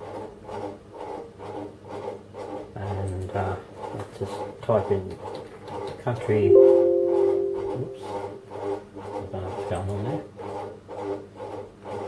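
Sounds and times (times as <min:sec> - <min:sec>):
low hum: 0:06.5 - 0:08.4.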